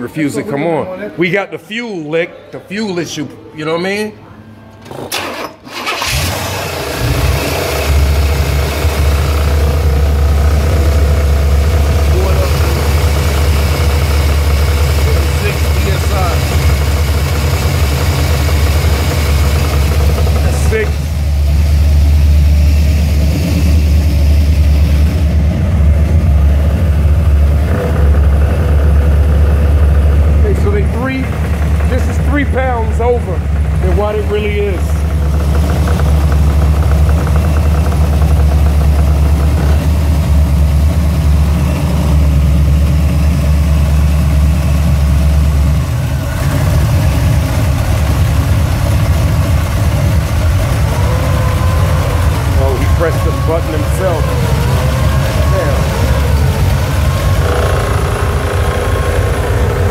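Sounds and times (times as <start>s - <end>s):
car engine idling: 5.8s - 59.9s.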